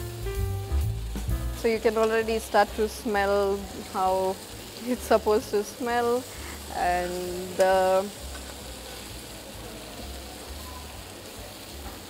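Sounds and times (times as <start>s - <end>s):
chicken sizzling in frying pan: 0.0s - 12.0s.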